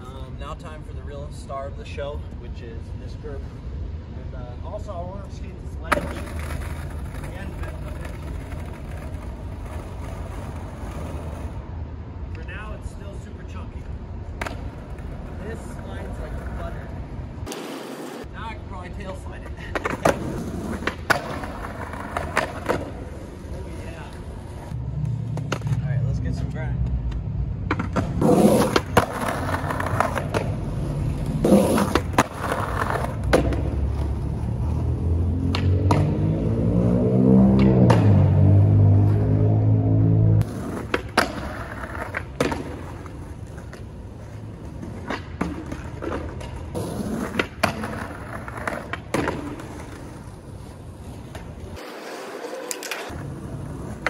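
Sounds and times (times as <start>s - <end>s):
skateboard wheels rolling on asphalt: 4.6s - 54.0s
skateboard clacks: 5.9s - 11.6s, 14.3s - 18.2s, 19.4s - 25.8s, 27.6s - 34.2s, 35.4s - 36.2s, 40.4s - 54.0s
skateboard grinding on curb: 5.9s - 11.6s, 14.4s - 18.3s, 19.7s - 24.7s, 27.8s - 36.4s, 40.4s - 54.0s.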